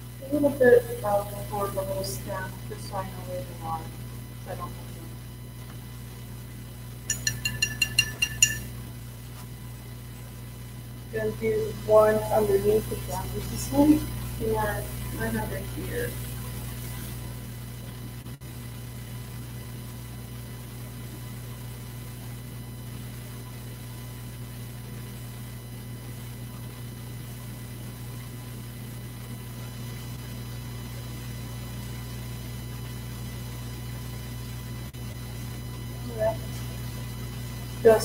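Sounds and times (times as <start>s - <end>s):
electrical mains hum: 0.0s - 38.0s.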